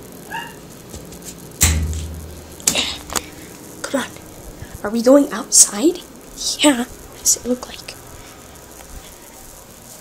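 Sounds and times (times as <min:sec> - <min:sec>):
loud thump with low rumble: 0:01.6 - 0:02.8.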